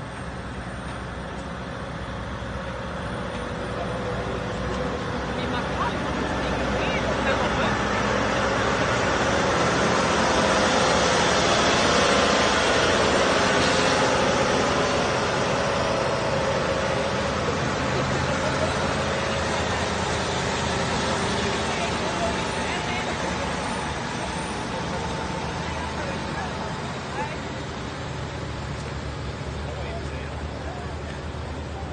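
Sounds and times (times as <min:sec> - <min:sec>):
heavy diesel trucks passing: 0:00.0 - 0:31.9.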